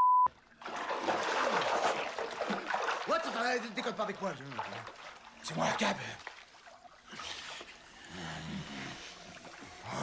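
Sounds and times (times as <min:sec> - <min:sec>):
bathwater splashing: 0:00.3 - 0:08.0.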